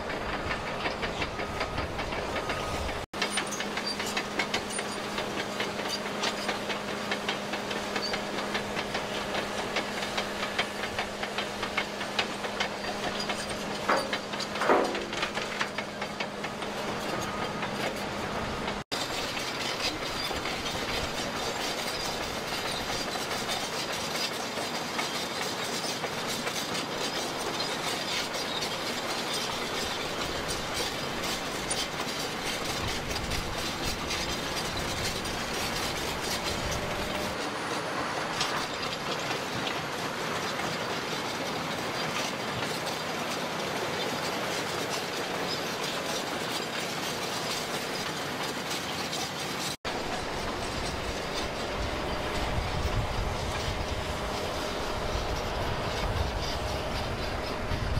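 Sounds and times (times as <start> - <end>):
bulldozer diesel engine: 0.0 - 57.9
steel tracks clattering: 0.0 - 57.9.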